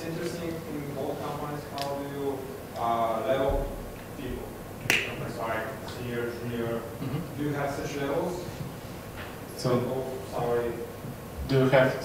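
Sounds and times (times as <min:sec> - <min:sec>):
man speaking over a microphone: 0:00.0 - 0:08.5.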